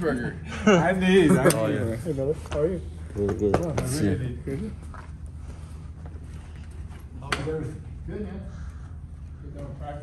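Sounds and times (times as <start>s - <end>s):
low rumble of background noise: 0.0s - 10.0s.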